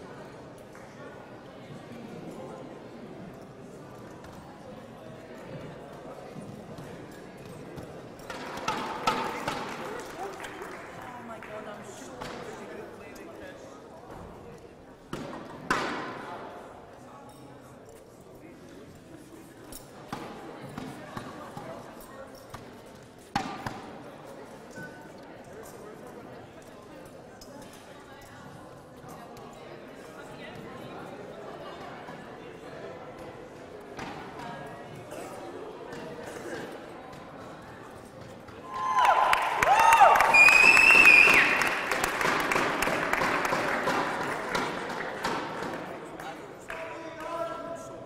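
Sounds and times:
indistinct background chatter: 0:00.0 - 0:48.0
audience applauding: 0:09.3 - 0:11.6, 0:38.7 - 0:45.2
high-pitched cheer: 0:38.7 - 0:42.0.

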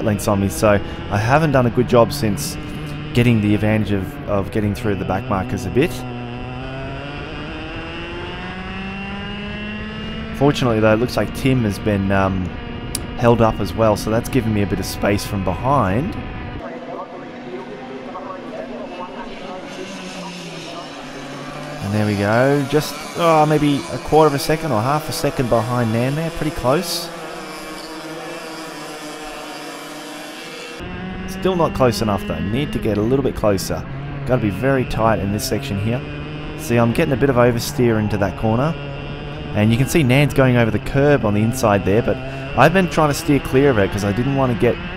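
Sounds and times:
go-kart engine at speed: 0:00.0 - 0:44.9.

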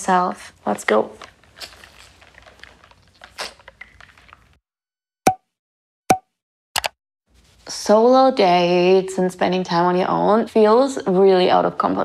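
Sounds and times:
short pop sound effect: 0:05.2 - 0:05.5.

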